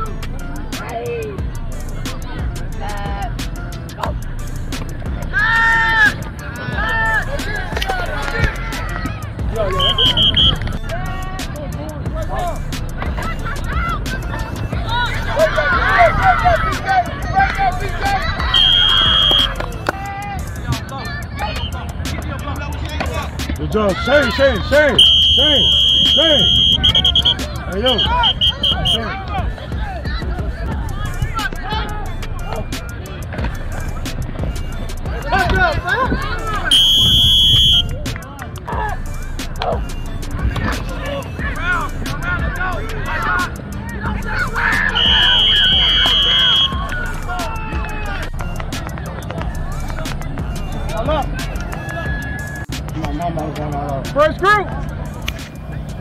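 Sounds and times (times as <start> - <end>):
voices shouting: 0.0 - 56.0
referee's whistle: 9.7 - 10.9, 18.5 - 19.6, 21.5 - 21.8, 24.9 - 29.1, 36.6 - 38.0, 44.7 - 47.6.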